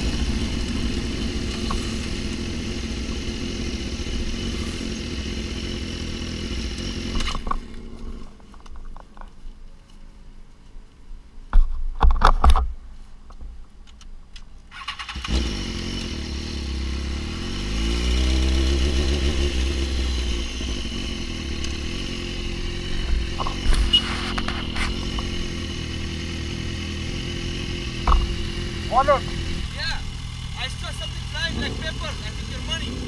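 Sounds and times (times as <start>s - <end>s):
motorcycle engine accelerating: 0.0s - 8.6s, 14.8s - 33.0s.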